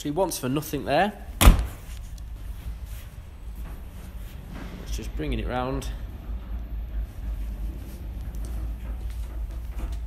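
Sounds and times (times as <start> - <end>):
low rumble of motorised turntable: 2.2 - 10.0.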